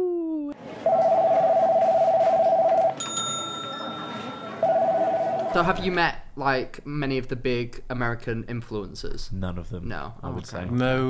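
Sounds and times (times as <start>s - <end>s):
warbling telephone ring tone: 0.9s - 5.8s
bright bell-like ding: 3.0s - 4.6s.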